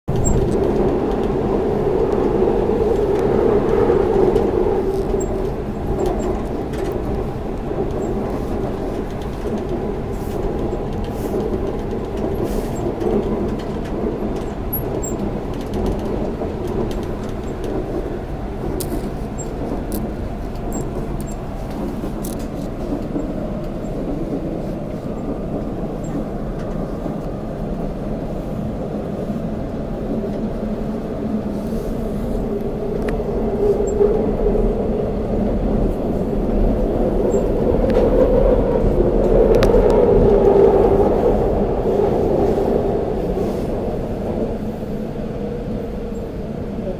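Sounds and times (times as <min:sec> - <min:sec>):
subway train rumble: 0:00.0 - 0:46.9.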